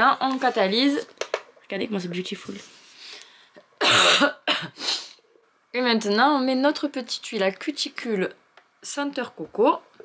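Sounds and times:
woman coughing: 0:03.8 - 0:05.1.

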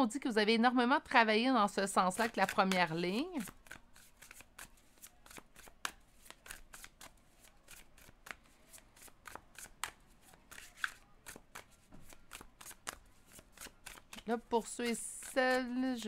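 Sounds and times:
cards being shuffled: 0:02.2 - 0:16.0.

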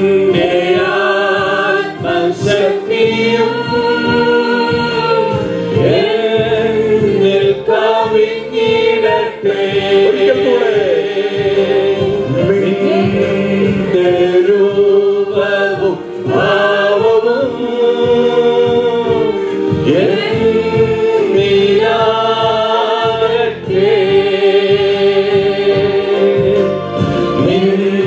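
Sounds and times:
accompaniment with low beat: 0:00.0 - 0:28.0
people singing into microphones: 0:00.0 - 0:28.0.

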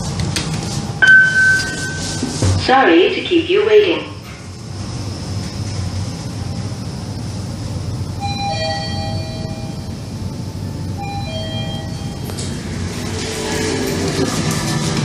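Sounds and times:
two-note electronic chime: 0:01.0 - 0:02.3
elevator descending rumble: 0:04.1 - 0:15.0.

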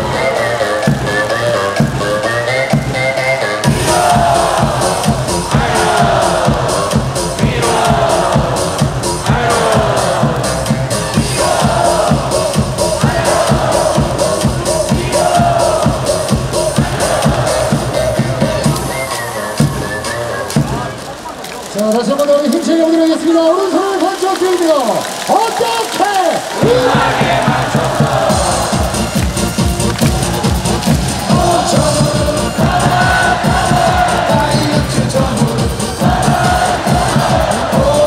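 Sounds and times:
crowd singing and chanting: 0:00.0 - 0:21.7, 0:26.4 - 0:38.0
upbeat cheer song over loudspeakers: 0:00.0 - 0:38.0.

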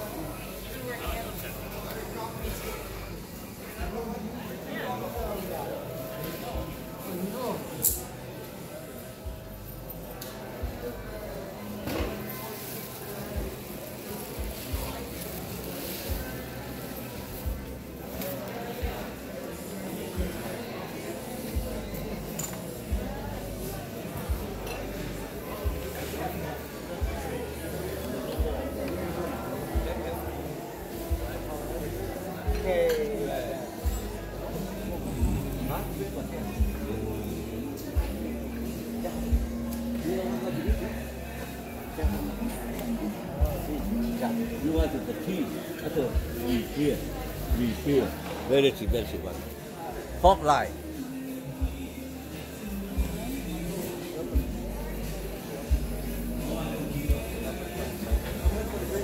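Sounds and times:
background music: 0:00.0 - 0:59.0
chatter of shoppers: 0:00.0 - 0:59.0.

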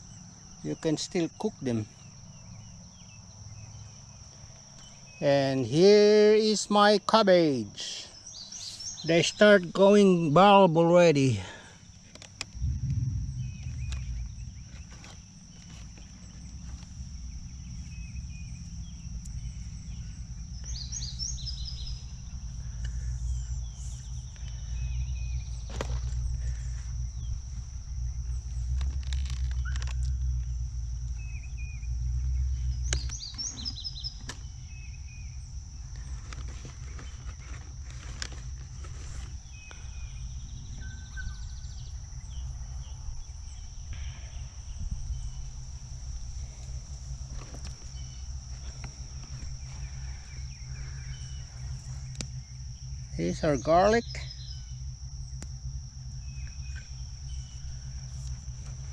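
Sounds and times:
high-pitched insect drone: 0:00.0 - 0:58.9
low rumble: 0:12.4 - 0:36.2, 0:37.0 - 0:58.9
bird chirps: 0:12.6 - 0:27.4, 0:31.1 - 0:35.5, 0:39.4 - 0:45.6, 0:47.6 - 0:55.4.

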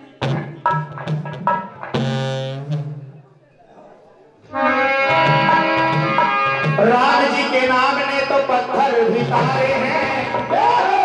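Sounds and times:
harmonium chord: 0:04.5 - 0:07.5
dholak stroke: 0:05.1 - 0:07.3.

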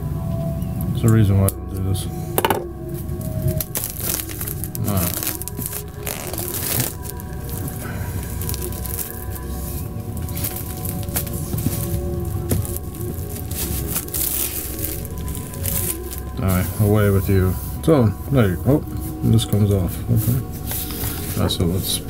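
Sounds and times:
quiet background music: 0:00.0 - 0:22.0
shrink-wrap crinkling and tearing: 0:03.0 - 0:17.6, 0:18.3 - 0:22.0.

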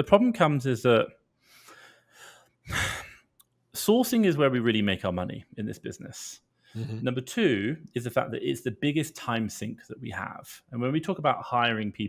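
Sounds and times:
man breathing into microphone: 0:01.4 - 0:03.2.

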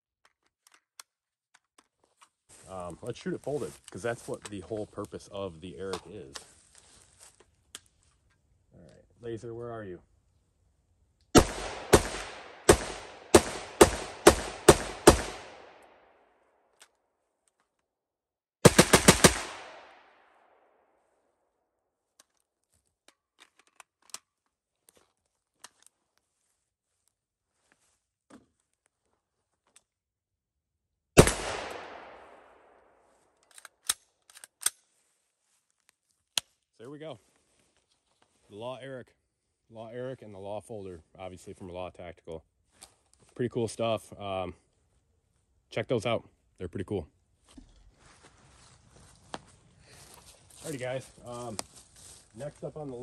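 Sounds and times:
rifle shots: 0:11.4 - 0:15.8, 0:18.6 - 0:20.1, 0:31.2 - 0:32.8.

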